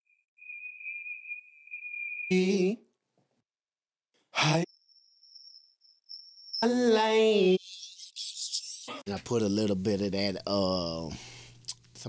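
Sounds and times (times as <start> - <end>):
thin steady high tone: 0.2 - 2.8, 4.6 - 8.2
singing voice: 2.3 - 2.8, 6.6 - 9.0.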